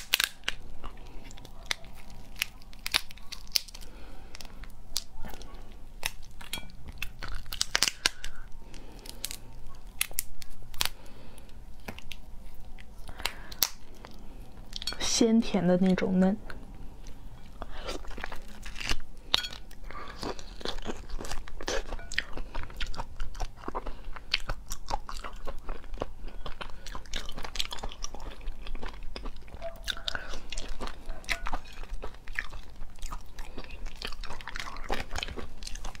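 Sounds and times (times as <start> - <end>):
person chewing and biting: 0.0 - 15.0, 17.0 - 36.0.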